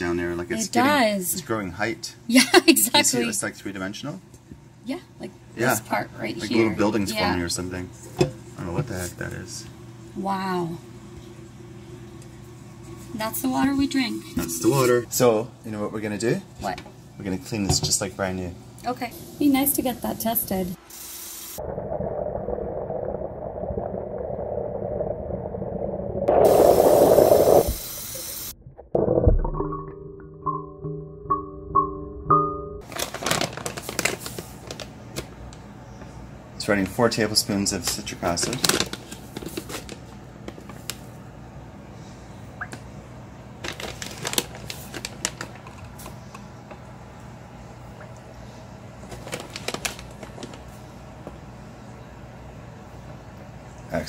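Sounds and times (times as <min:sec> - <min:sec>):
low hum: 0:21.6 - 0:32.8
music with mallet notes: 0:30.0 - 0:32.8.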